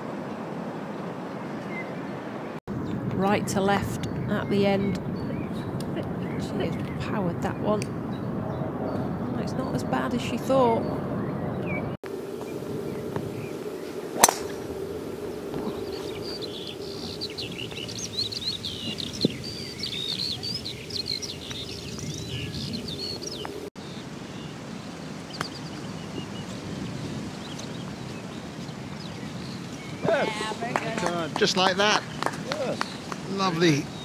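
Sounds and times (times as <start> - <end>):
birds calling: 0.2 - 34.0
faint steady hum: 12.1 - 24.2
golf club striking ball: 14.1 - 14.7.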